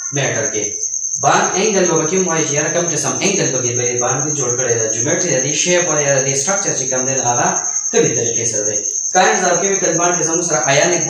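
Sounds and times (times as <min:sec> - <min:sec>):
high-pitched trill: 0:00.0 - 0:11.0
man lecturing: 0:00.1 - 0:11.0.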